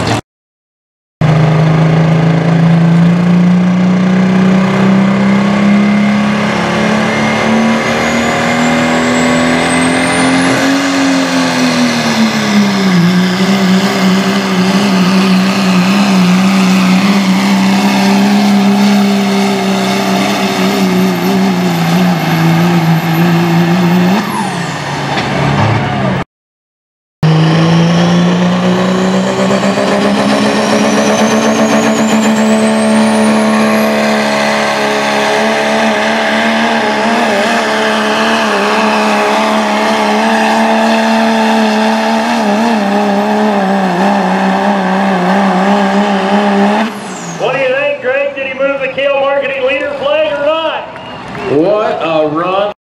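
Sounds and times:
diesel engine at high rpm: 0.0s - 0.2s, 1.2s - 26.2s, 27.2s - 52.8s.

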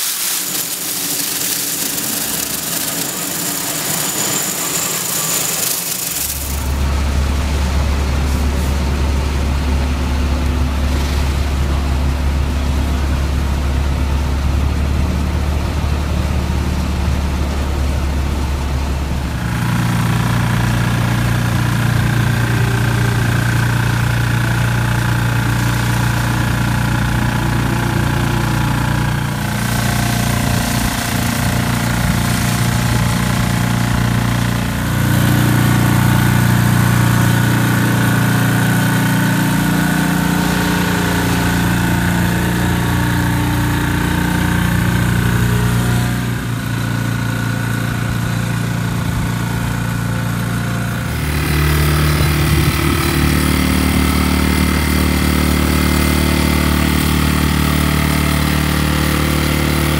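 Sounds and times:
power wash machine humming: 0.0s - 59.9s.

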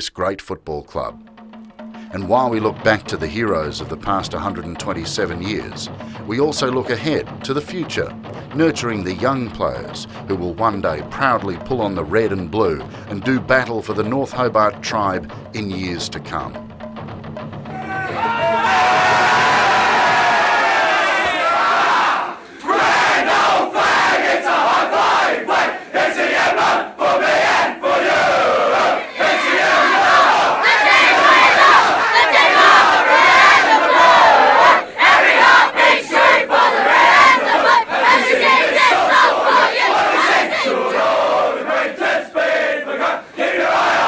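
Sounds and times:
crowd shouting a song: 17.7s - 44.0s.

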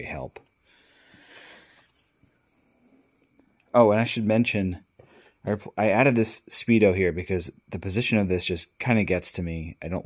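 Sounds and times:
soft breath exhale: 0.6s - 1.9s.

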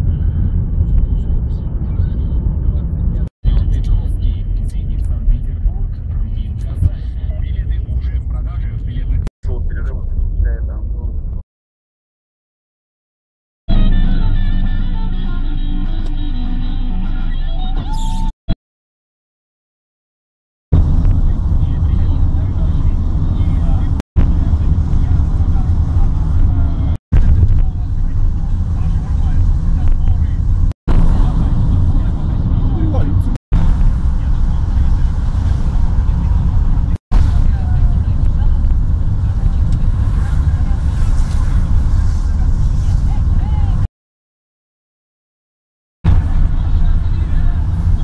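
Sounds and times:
car road noise rumble: 0.0s - 11.4s, 20.8s - 43.9s, 46.1s - 48.0s
indistinct voices: 21.1s - 43.9s.

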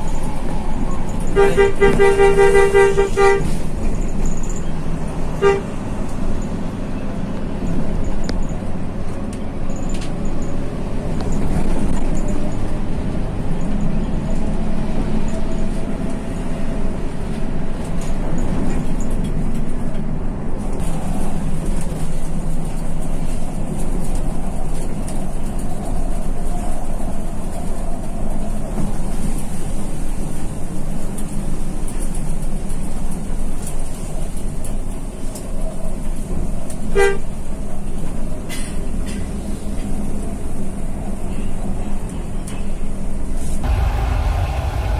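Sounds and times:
bus engine running: 0.0s - 44.9s.

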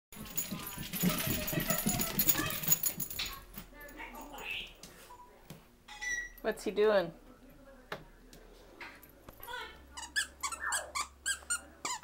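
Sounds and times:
small dogs barking and yipping: 0.2s - 3.4s.

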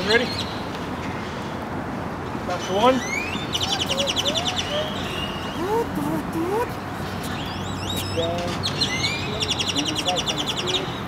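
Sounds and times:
songbirds whistling: 3.0s - 11.0s
bird chattering trill: 3.6s - 8.2s.

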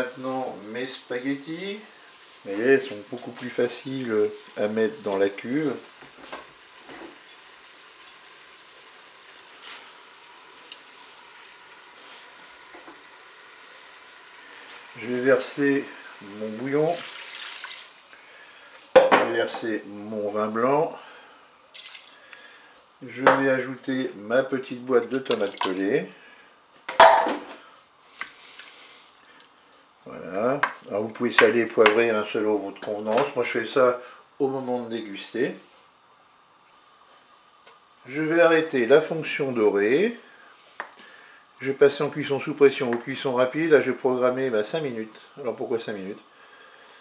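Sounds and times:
food sizzling in hot oil: 0.0s - 19.9s, 21.7s - 22.4s
tomatoes plopping into pot: 26.9s - 27.4s.

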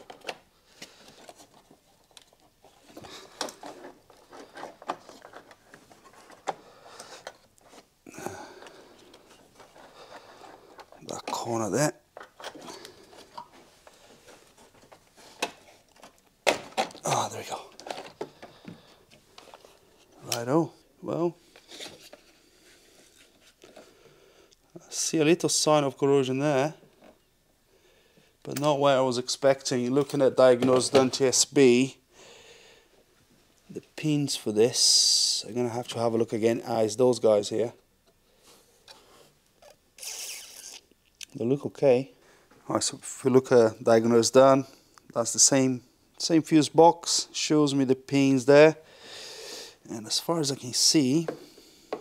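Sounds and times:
plastic rubbing and rattling: 0.0s - 7.9s, 8.5s - 19.8s.

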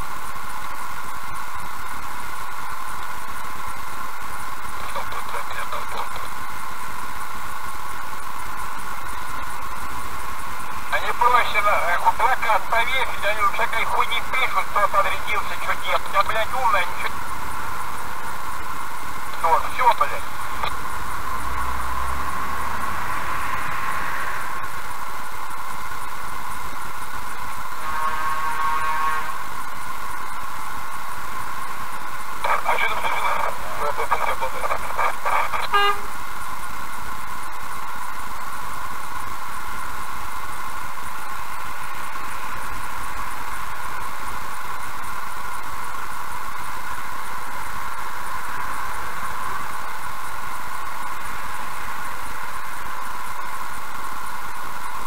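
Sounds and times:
steady electrical hum: 0.0s - 55.0s
indistinct voices in car: 4.8s - 6.4s, 10.9s - 17.2s, 19.3s - 20.8s, 32.4s - 36.1s
vehicle horn: 27.8s - 29.6s, 35.7s - 36.2s.

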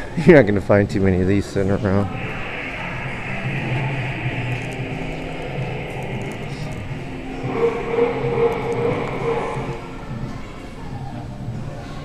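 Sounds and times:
indoor room noise: 1.5s - 11.1s
held pitched tone: 1.9s - 10.4s.

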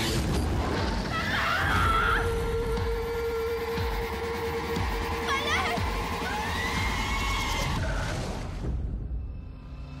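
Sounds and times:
horror trailer score and effects: 0.0s - 10.0s.

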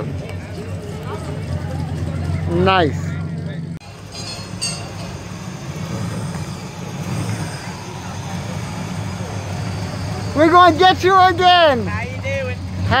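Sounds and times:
car engine idling: 0.0s - 13.0s
low engine rumble: 0.0s - 13.0s.

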